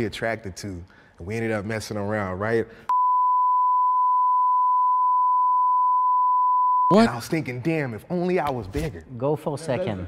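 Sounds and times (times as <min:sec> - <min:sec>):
high censor bleep: 0:02.9 - 0:07.0.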